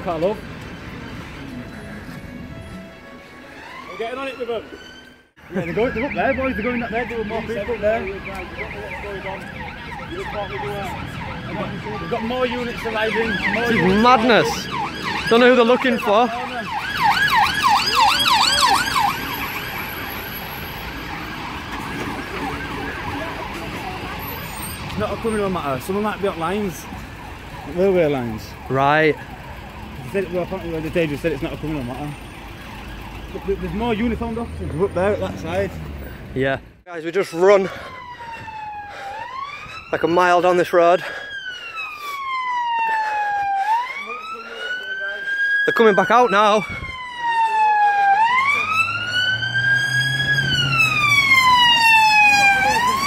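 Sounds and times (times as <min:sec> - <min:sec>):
police siren yelping: 0:03.4 - 0:36.1, 0:37.4 - 0:53.0.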